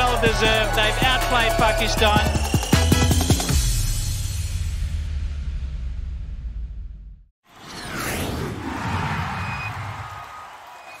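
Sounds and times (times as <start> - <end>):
whoosh: 7.6 - 10.2.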